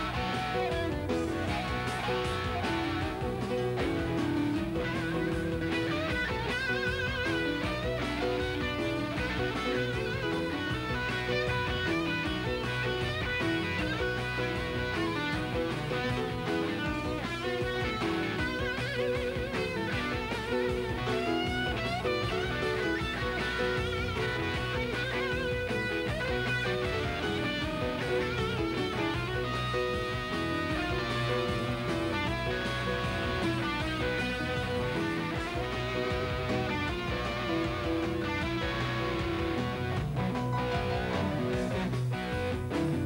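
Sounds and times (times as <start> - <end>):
electric guitar lead notes: 0.0 - 43.0
live rock band: 0.0 - 43.0.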